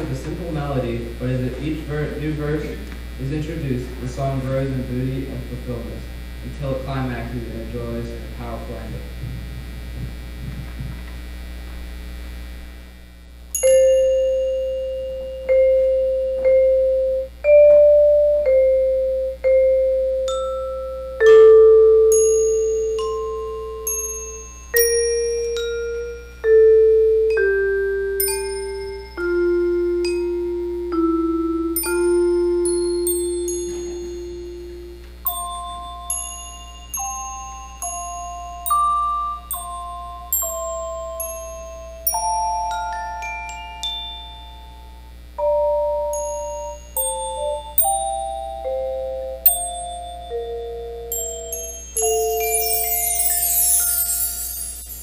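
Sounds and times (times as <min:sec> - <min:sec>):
steady electrical hum: 0:00.0 - 0:55.0
high mallet percussion note: 0:31.8 - 0:44.7, 0:45.5 - 0:55.0.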